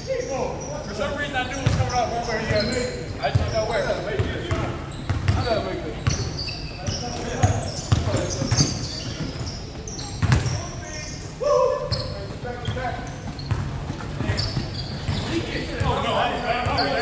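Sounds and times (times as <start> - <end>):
sneaker squeaks: 0.0 - 17.0
players calling out: 5.3 - 17.0
basketball bouncing on hardwood floor: 10.2 - 10.6.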